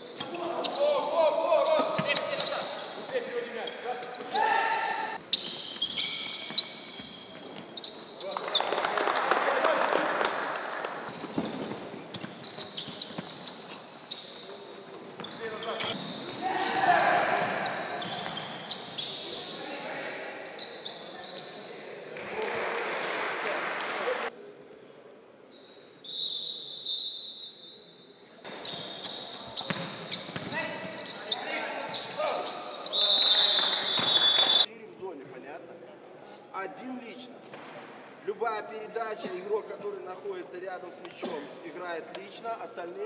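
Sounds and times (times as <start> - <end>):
basketball bouncing on court: 10.2 - 13.8, 28.5 - 31.1.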